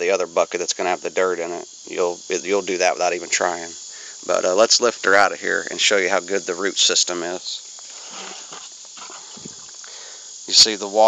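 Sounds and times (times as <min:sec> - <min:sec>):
steady hiss: 0:00.0 - 0:11.0
plastic bucket scraping and rustling: 0:07.8 - 0:09.7.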